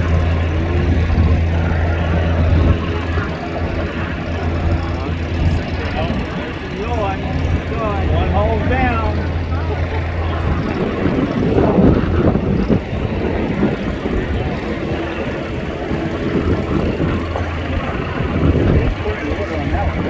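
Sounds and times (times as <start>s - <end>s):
boat engines droning: 0.0s - 20.0s
outdoor noise: 0.0s - 20.0s.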